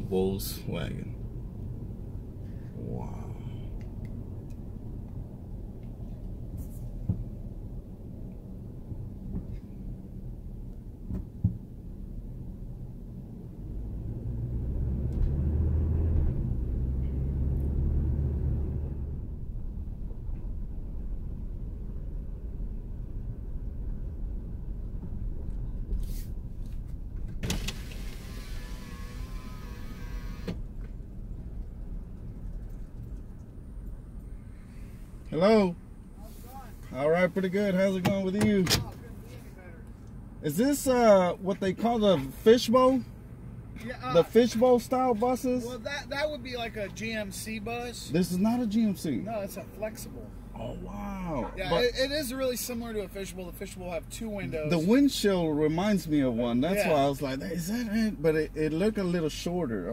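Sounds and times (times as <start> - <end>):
engine and road rumble: 0.0 - 59.9
electric window motor whirring: 27.4 - 30.6.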